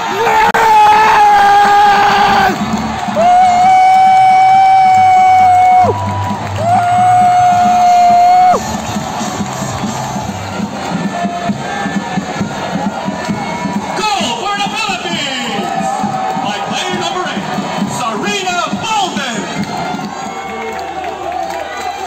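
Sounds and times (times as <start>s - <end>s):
stadium crowd cheering: 0.0s - 22.0s.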